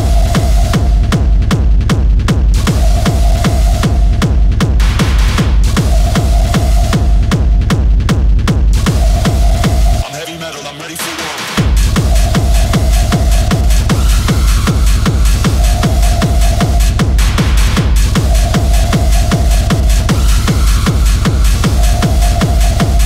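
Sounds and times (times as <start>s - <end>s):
kick drum: 0.0s - 10.0s, 11.6s - 23.0s.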